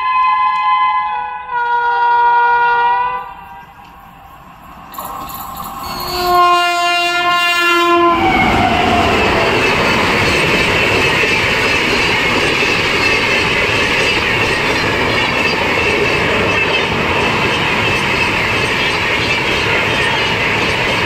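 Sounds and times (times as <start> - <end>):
train horn blast: 0.0 - 3.9, 5.8 - 9.3
train coaches rushing past: 2.6 - 21.0
wheels clacking over rail joints: 3.5 - 6.8, 8.6 - 21.0.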